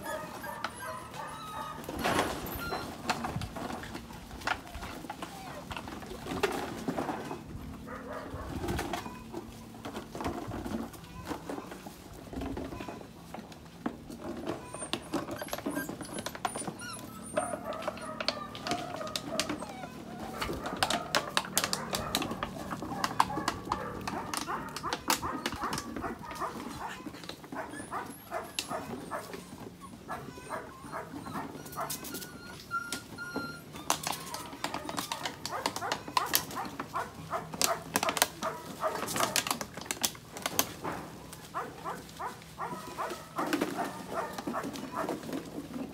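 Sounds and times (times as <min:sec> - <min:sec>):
puppies barking and yipping: 0:00.0 - 0:13.0, 0:14.1 - 0:45.9
puppies scuffling: 0:00.0 - 0:45.9.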